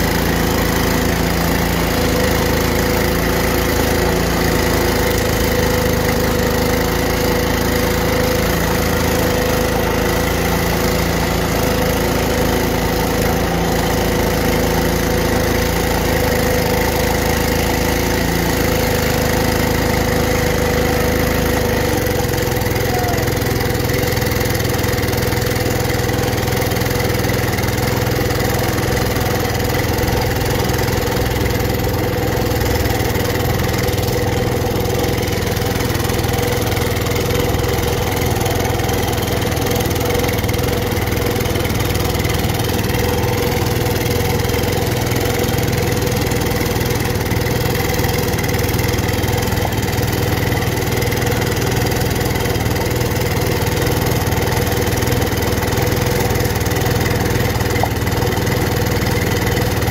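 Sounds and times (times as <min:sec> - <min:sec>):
tractor engine running under load: 0:00.0 - 0:59.9.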